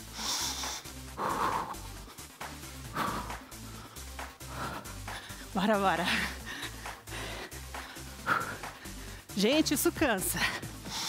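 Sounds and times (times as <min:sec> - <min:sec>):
woman breathing hard: 0:00.0 - 0:05.5, 0:06.1 - 0:09.4, 0:10.4 - 0:11.0
background music with bass: 0:00.0 - 0:11.0.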